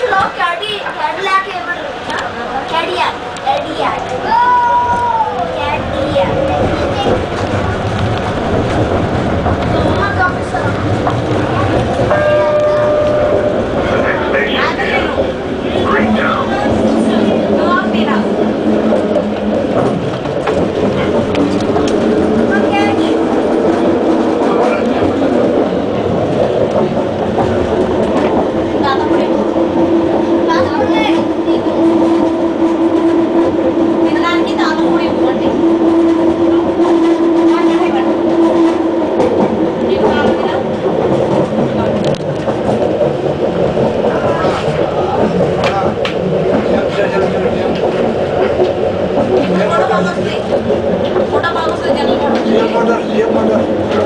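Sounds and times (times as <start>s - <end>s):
train car rolling noise: 0.0s - 54.0s.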